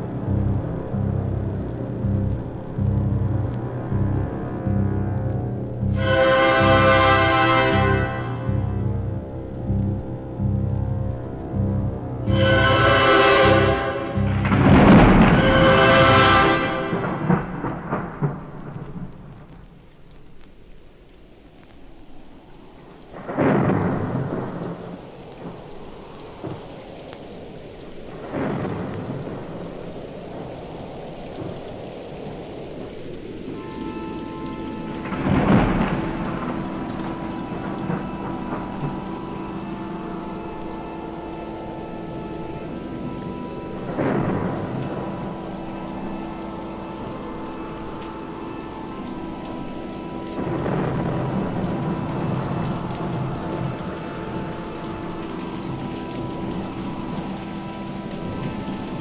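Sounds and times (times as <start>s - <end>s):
sustained chord of held notes: 0.0s - 18.2s
rolling thunder claps: 0.0s - 19.9s, 23.1s - 59.0s
rain: 0.0s - 59.0s.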